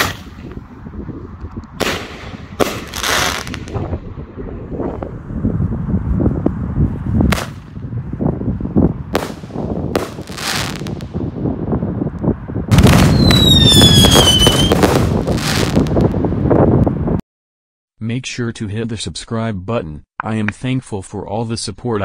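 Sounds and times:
fireworks bangs: 0.0 - 0.6, 1.8 - 4.0, 7.3 - 7.8, 9.1 - 11.3, 12.7 - 16.5
falling firework whistle: 12.8 - 15.6.

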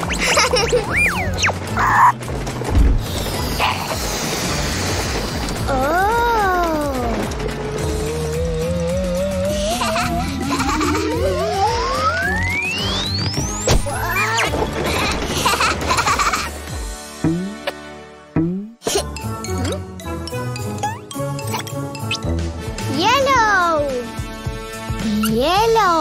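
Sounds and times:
playful background music: 0.0 - 26.0
cartoon voices squealing: 0.6 - 2.2, 13.9 - 14.5
low thump: 2.7 - 3.1.

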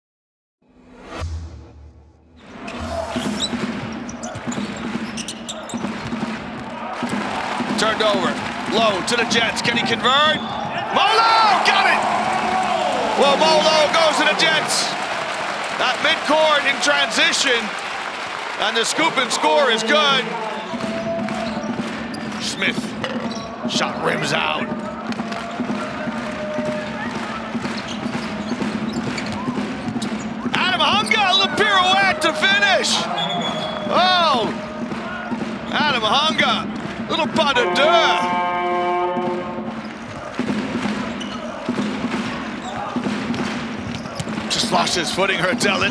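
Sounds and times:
arena noise: 2.4 - 45.9
sneaker squeaks: 2.6 - 6.2, 23.0 - 23.7, 27.6 - 31.4, 33.1 - 33.9, 41.2 - 41.9, 42.6 - 43.0, 43.8 - 44.4
basketball bouncing on hardwood: 3.3 - 7.8.

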